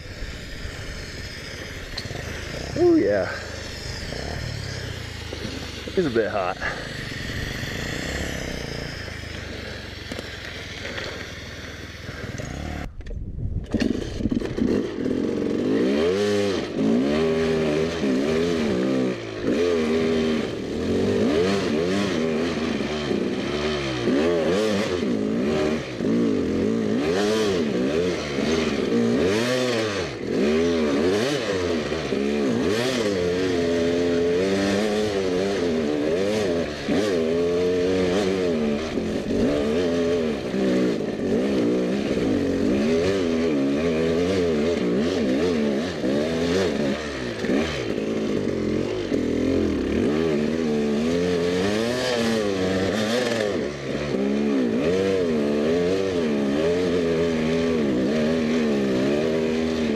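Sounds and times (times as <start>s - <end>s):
dirt bike engine revving: 0.0s - 13.0s, 13.6s - 59.9s.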